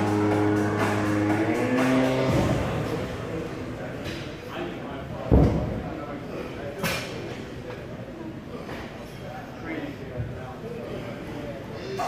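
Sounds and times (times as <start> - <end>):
background music: 0.0 - 3.5.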